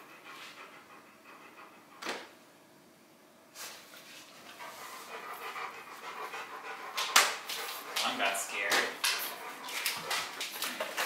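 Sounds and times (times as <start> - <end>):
dog panting: 0.0 - 2.3, 4.4 - 11.0.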